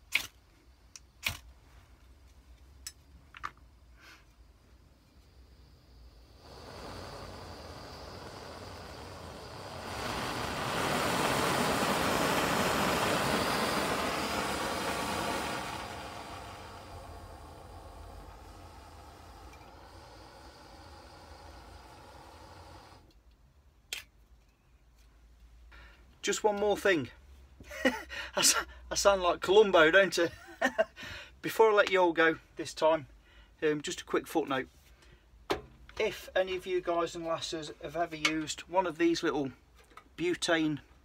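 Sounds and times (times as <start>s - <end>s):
gas burner hissing: 5.3s - 23.1s.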